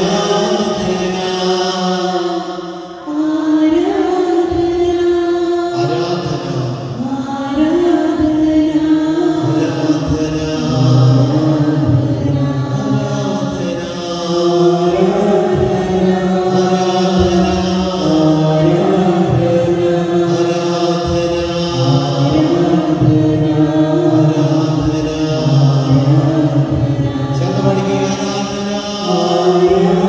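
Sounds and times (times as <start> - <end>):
man chanting a sung prayer: 0.0 - 5.0, 5.6 - 30.0.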